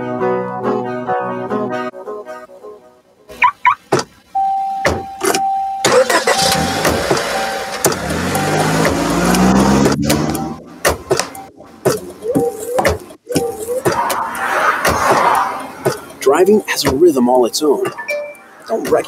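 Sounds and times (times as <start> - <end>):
car warning chime beeping: 3.4 - 13.8, 16.0 - 18.9
car engine starting and revving: 5.2 - 16.2
clicks: 6.8 - 16.2.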